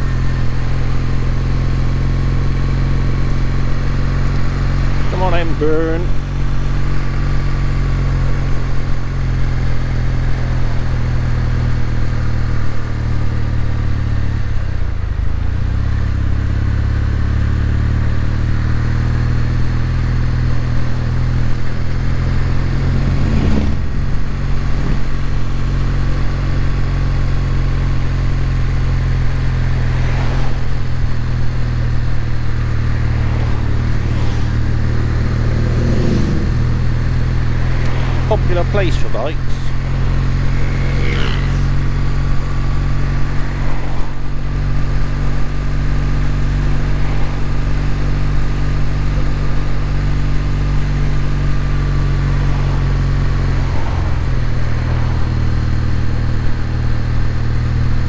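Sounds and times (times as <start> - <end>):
motorcycle engine running: 0.0 - 58.0
vehicles swishing past: 22.4 - 25.6, 29.2 - 58.0.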